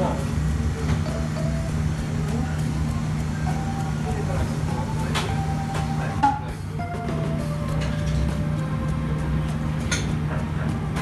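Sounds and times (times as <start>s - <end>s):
steady low hum: 0.0s - 11.0s
background music: 1.1s - 11.0s.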